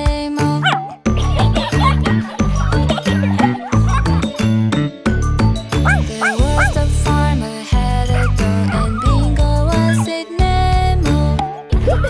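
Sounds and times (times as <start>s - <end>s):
upbeat children's song: 0.0s - 12.0s
dog barking: 5.9s - 6.8s.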